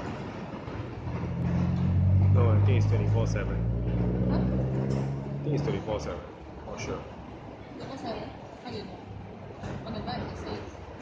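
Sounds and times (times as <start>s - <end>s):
vehicle engine drone: 0.0s - 8.0s
traffic road noise: 0.0s - 11.0s.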